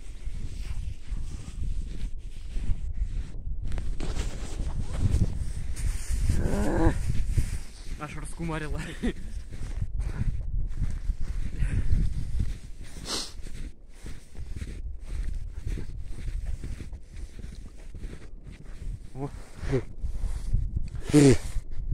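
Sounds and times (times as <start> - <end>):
person tumbling in snow: 0.3 - 8.0
person exclaiming: 6.4 - 7.0.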